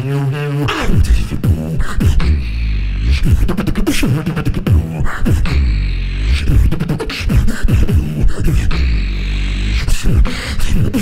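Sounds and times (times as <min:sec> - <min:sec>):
beatboxing into a microphone: 0:00.0 - 0:11.0.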